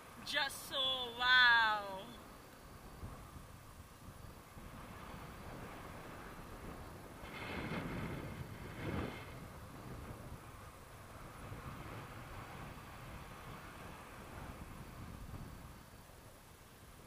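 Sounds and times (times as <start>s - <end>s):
wind rushing over microphone: 0.0s - 17.0s.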